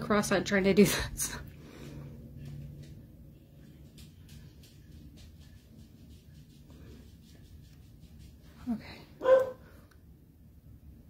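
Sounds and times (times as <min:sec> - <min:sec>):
steady low hum: 0:00.0 - 0:11.0
brush tapping on skin: 0:03.6 - 0:08.7.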